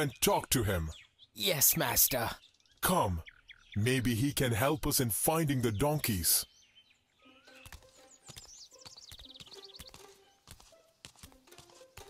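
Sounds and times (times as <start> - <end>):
bird twittering: 0.0 - 10.8
quiet background music: 7.0 - 12.0
cartoon footsteps: 7.4 - 12.0.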